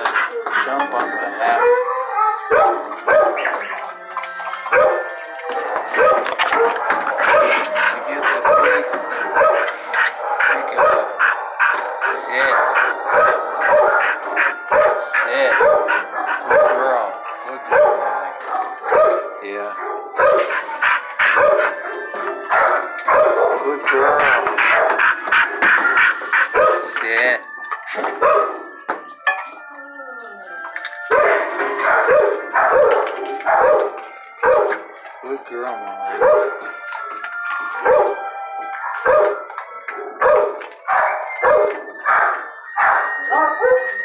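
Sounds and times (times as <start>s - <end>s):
dogs barking: 0.0s - 29.5s, 30.8s - 35.2s, 36.1s - 44.0s.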